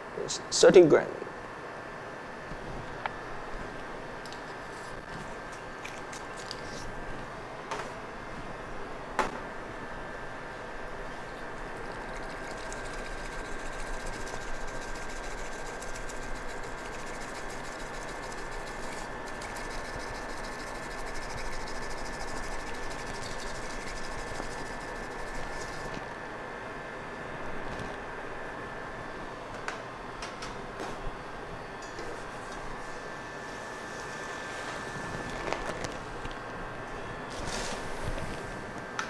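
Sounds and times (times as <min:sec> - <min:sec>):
faint steady hum: 0:00.0 - 0:39.0
whisk swishing in ceramic bowl: 0:11.3 - 0:25.9.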